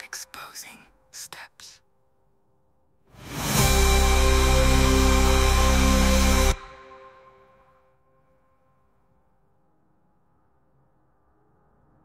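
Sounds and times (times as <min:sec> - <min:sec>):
person whispering: 0:00.0 - 0:01.9.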